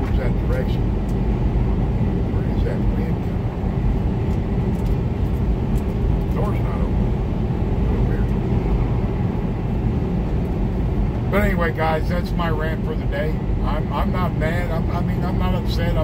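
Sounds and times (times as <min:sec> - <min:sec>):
truck diesel engine drone: 0:00.0 - 0:16.0.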